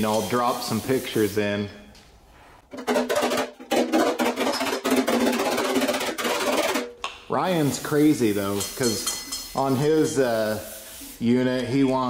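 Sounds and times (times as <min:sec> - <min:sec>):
hammer tapping sheet metal: 0:02.7 - 0:07.0, 0:08.5 - 0:10.2.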